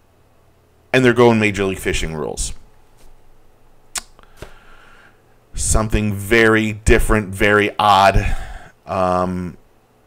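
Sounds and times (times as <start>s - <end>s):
sharp click: 3.9s - 4.6s.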